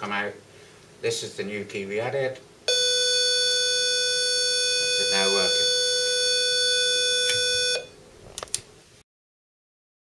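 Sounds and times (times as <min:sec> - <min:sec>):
buzzy door entry tone: 0:02.7 - 0:07.9.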